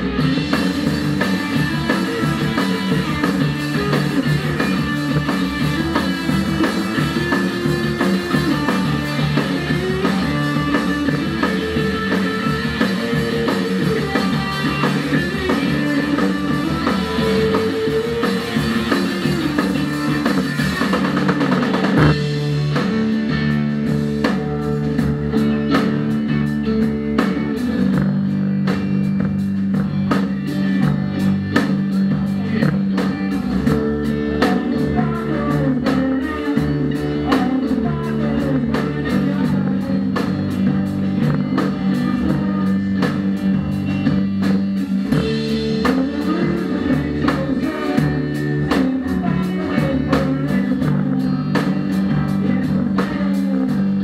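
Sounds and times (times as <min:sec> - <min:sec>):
drum kit steady beat: 0:00.0 - 0:54.0
guitars holding low notes: 0:00.0 - 0:54.0.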